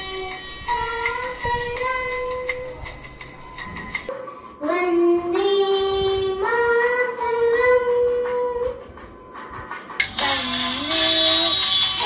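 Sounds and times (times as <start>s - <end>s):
girl singing: 0.0s - 3.0s, 4.6s - 8.9s, 10.1s - 12.0s.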